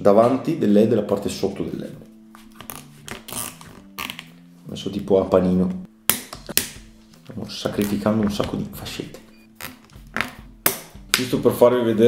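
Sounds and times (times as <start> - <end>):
soft background music: 0.0 - 12.0
plastic zip ties clicking: 2.6 - 4.3.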